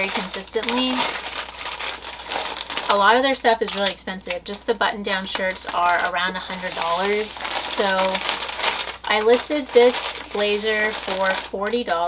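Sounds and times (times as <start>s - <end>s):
woman speaking: 0.0s - 1.2s, 2.9s - 8.3s, 9.0s - 12.0s
packing paper rustling: 0.0s - 4.5s, 5.1s - 12.0s.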